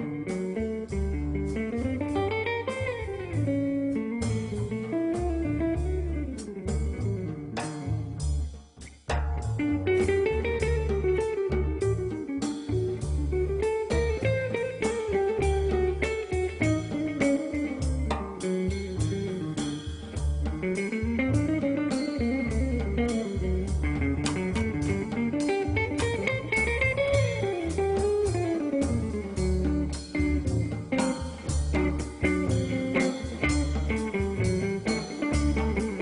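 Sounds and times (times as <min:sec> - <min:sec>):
plucked double bass: 0:00.0 - 0:36.0
guitar single-note line: 0:20.7 - 0:36.0.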